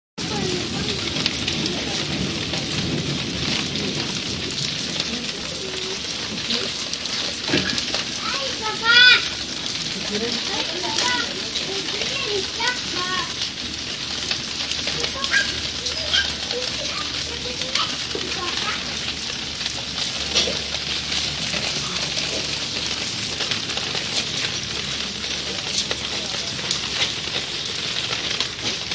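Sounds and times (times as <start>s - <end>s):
water pouring and splashing: 0.2s - 28.9s.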